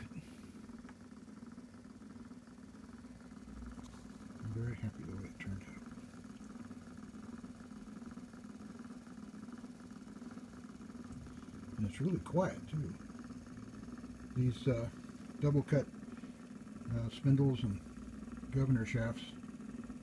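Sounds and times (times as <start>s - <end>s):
phonograph motor whirring: 0.0s - 20.0s.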